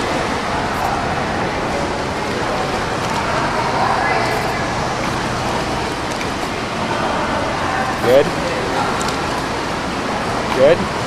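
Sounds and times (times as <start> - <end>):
swimmer splashing water: 0.0 - 11.0.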